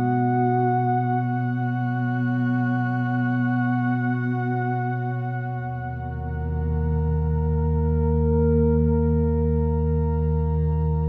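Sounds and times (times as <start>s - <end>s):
ambient synthesizer chord: 0.0s - 11.0s.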